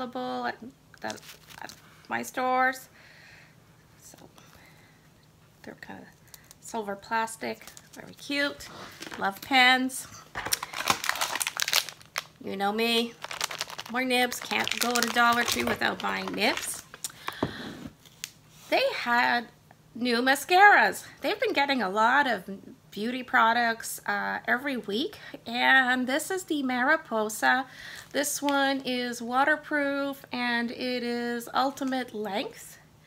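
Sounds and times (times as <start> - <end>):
soft intake of breath: 17.1 - 18.7.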